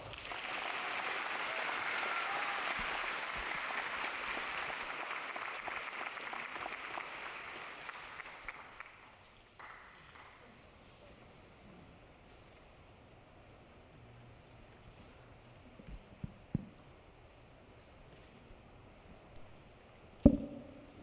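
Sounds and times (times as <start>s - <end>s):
audience applauding: 0.0s - 10.4s.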